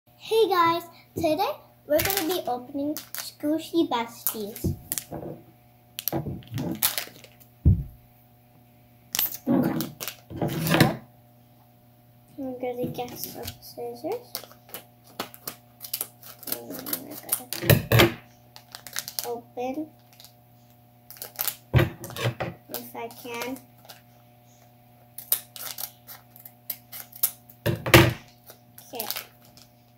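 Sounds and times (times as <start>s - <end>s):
plastic packaging crinkling: 1.9s - 5.2s, 6.0s - 7.5s, 9.1s - 10.6s, 14.2s - 17.7s, 18.5s - 20.4s, 21.0s - 24.2s, 25.2s - 27.6s, 28.2s - 29.9s
dull thump: 7.6s - 8.0s.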